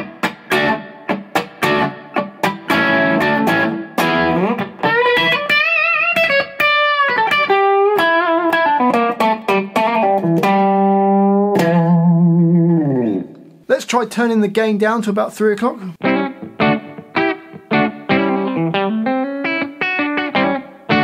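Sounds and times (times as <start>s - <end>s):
overdriven electric guitar lead: 0.0s - 13.6s, 16.0s - 21.0s.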